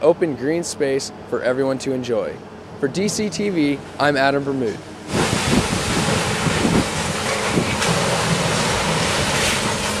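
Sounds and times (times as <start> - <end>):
rushing haze: 4.9 - 10.0.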